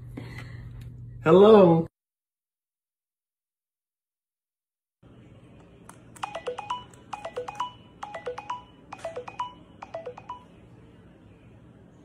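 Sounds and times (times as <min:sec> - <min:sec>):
smartphone tones with clicks: 0:06.2 - 0:10.5.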